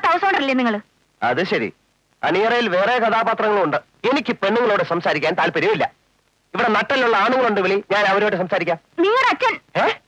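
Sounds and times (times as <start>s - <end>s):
film dialogue: 0.0s - 10.0s.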